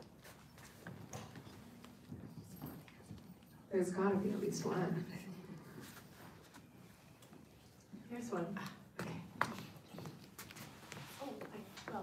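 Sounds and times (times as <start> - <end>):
audience knocks and shuffling: 0.0 - 12.0.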